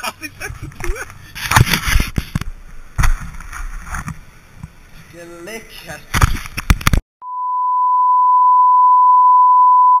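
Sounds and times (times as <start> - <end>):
steady electronic beep: 7.2 - 10.0.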